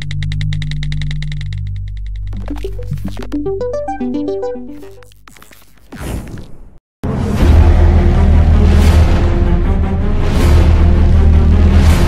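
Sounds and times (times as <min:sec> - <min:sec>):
fast even ticking: 0:00.0 - 0:05.1.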